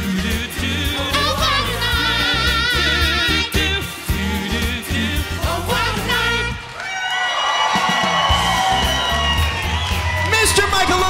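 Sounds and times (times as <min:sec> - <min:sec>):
vocal group and band chord: 0:00.0 - 0:06.8
audience cheering and whooping: 0:06.6 - 0:11.0.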